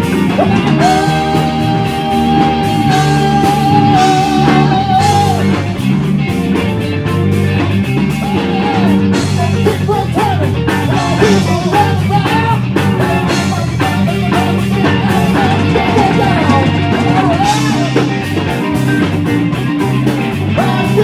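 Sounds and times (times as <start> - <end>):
person singing: 0.0 - 5.7, 8.0 - 18.6, 20.3 - 21.0
live rock band playing: 0.0 - 21.0.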